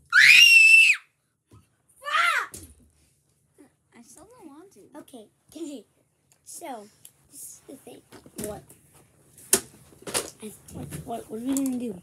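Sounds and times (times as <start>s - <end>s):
child screaming: 0.1s - 1.1s, 2.0s - 2.5s.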